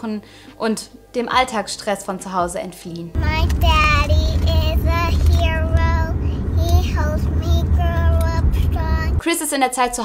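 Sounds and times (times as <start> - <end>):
car low rumble: 3.2 - 9.2
girl singing: 3.2 - 9.2.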